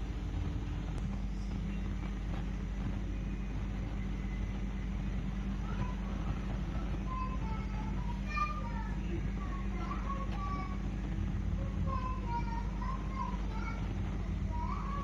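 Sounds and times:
low rumbling hum: 0.0s - 15.0s.

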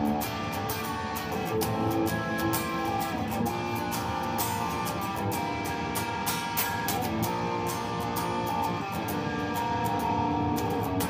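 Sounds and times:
electric guitar strummed: 0.0s - 11.0s.

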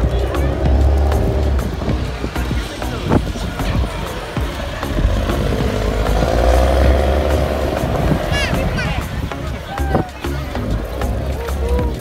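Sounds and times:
bus diesel engine passing: 0.0s - 11.8s.

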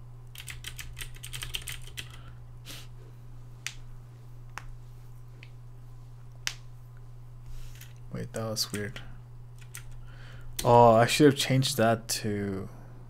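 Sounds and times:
keyboard typing: 0.3s - 2.2s, 8.7s - 10.0s.

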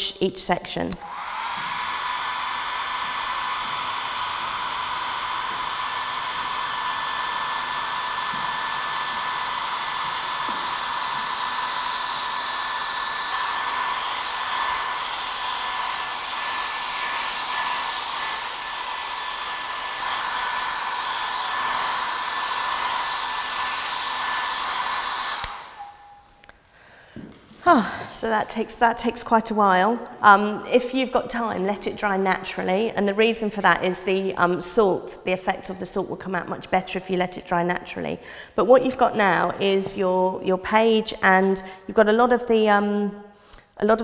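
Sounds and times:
hair dryer running: 0.9s - 26.6s.

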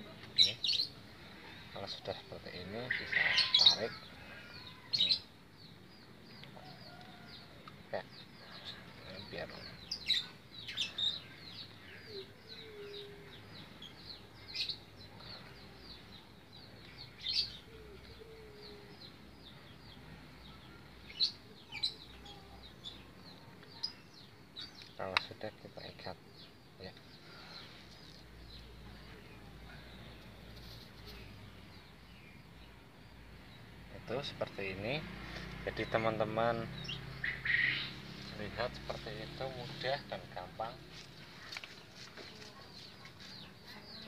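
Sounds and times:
small birds chirping: 0.0s - 44.0s.

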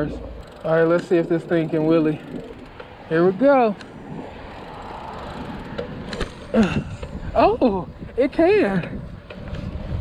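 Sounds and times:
rider vocal sound: 0.0s - 5.7s
bicycle riding on asphalt: 0.0s - 10.0s.

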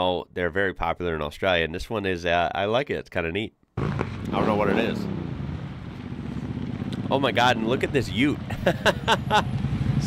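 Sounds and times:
truck engines droning: 3.8s - 10.0s.

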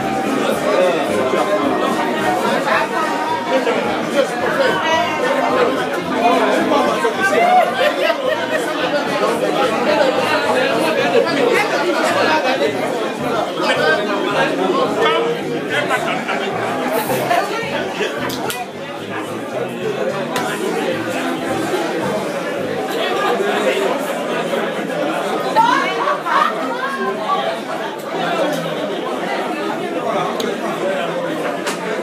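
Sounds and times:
crowd chatter: 0.0s - 32.0s.

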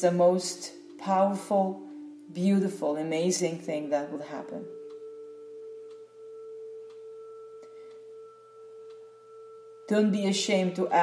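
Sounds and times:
steady drone tone: 0.0s - 11.0s.

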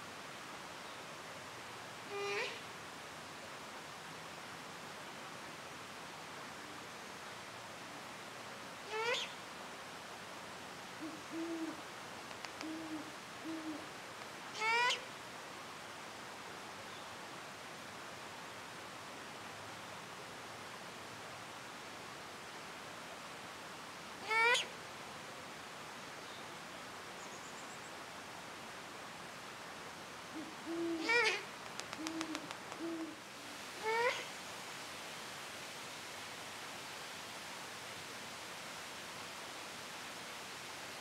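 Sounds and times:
owl hooting: 2.1s - 2.6s, 8.9s - 9.4s, 11.0s - 11.8s, 12.6s - 13.9s, 14.6s - 15.1s, 24.2s - 24.7s, 30.3s - 33.2s, 33.8s - 34.3s
owl rising call: 2.1s - 2.6s, 8.9s - 9.4s, 11.0s - 11.8s, 12.6s - 13.9s, 14.6s - 15.1s, 24.2s - 24.7s, 30.3s - 33.2s, 33.8s - 34.3s
sharp clicks: 31.6s - 32.8s.

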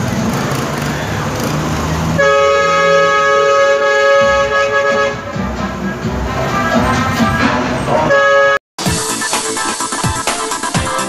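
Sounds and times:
loud vehicle horn chord: 2.2s - 8.6s.

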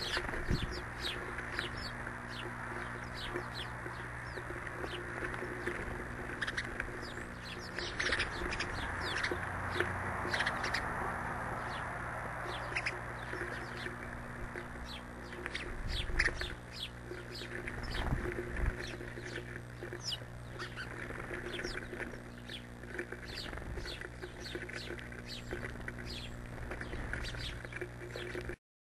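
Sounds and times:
small songbirds chirping: 0.0s - 28.6s
steady low hum: 0.0s - 28.6s.

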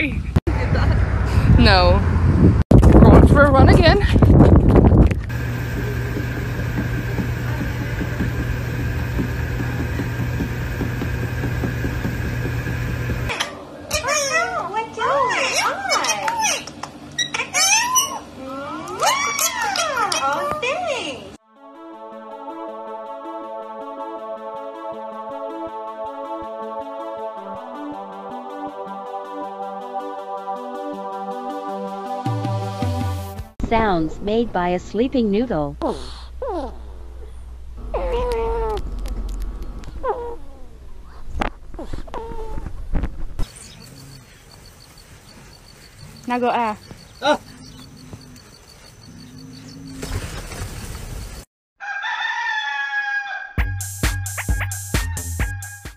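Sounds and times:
ferret whining squeaks: 17.2s - 20.7s.

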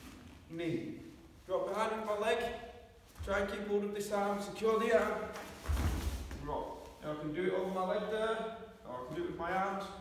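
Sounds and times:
cotton uniforms rustling: 1.2s - 8.1s
body thudding onto mat: 5.6s - 6.4s.

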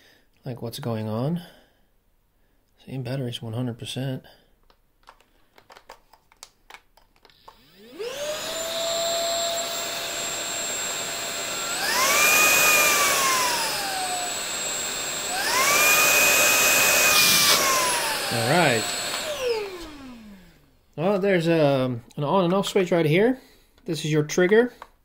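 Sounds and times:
handling clicks: 4.6s - 7.6s
vacuum cleaner motor whine: 7.4s - 21.2s.

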